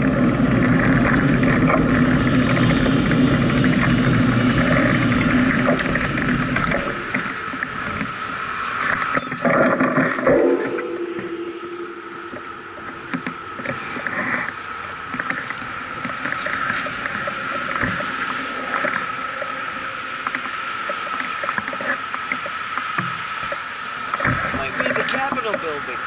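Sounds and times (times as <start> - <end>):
high-pitched whine: 0.0 - 22.6.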